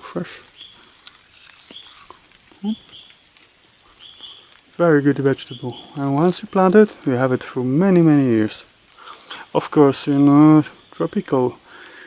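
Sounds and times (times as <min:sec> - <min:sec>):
person chewing leaf: 0:00.4 - 0:04.7
person saying mm: 0:02.5 - 0:02.9.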